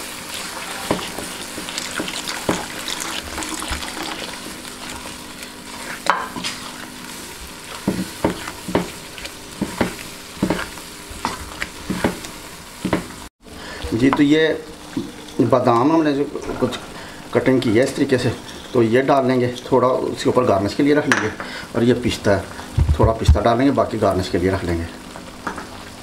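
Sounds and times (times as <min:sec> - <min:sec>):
milk mixture sizzling in a wok: 0:00.0 - 0:26.0
spatula scraping a pan: 0:00.3 - 0:03.4, 0:04.8 - 0:12.3, 0:18.2 - 0:18.9
milk being poured: 0:02.2 - 0:04.4.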